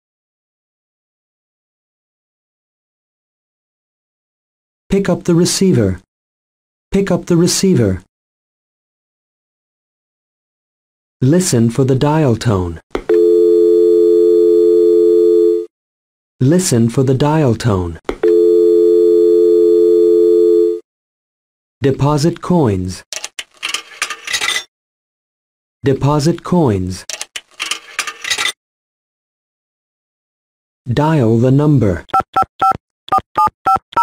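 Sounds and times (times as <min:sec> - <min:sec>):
telephone dial tone: 0:13.0 - 0:15.7, 0:18.2 - 0:20.8
telephone keypad beeps: 0:32.1 - 0:34.0.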